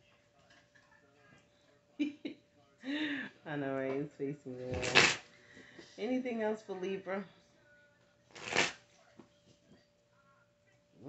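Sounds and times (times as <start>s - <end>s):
cards shuffling swish: 4.7s - 5.2s, 8.3s - 8.8s.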